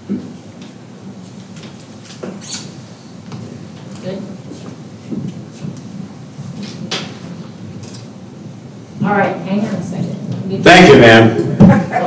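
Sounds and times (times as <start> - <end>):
low room murmur: 0.0 - 12.0.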